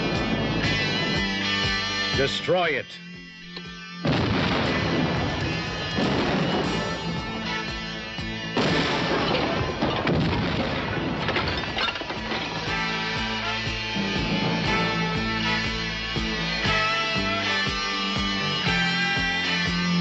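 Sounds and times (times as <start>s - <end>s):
music: 0.0s - 20.0s
loud explosions: 4.0s - 7.5s, 8.6s - 12.2s
brick building collapsing: 8.6s - 12.7s.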